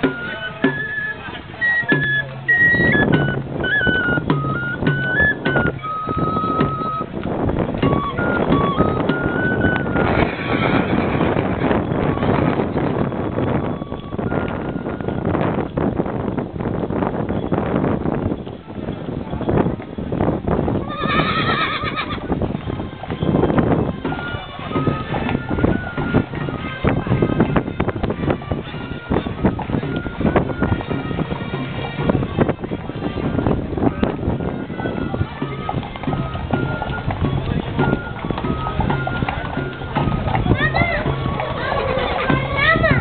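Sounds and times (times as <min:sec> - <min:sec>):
crowd talking: 0:00.0 - 0:43.0
hooves clip-clopping on pavement: 0:00.0 - 0:43.0
horse whinnying: 0:09.9 - 0:11.6, 0:20.8 - 0:22.3.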